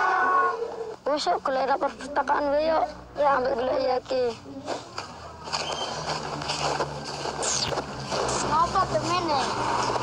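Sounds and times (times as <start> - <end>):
child speaking: 1.0 - 4.7, 8.4 - 9.6.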